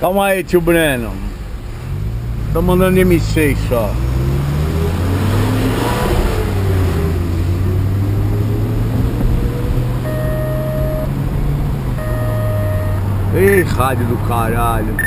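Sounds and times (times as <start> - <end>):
car engine from inside cabin: 4.3 - 13.9
mobile phone ringing tone: 10.0 - 11.1, 12.0 - 13.0.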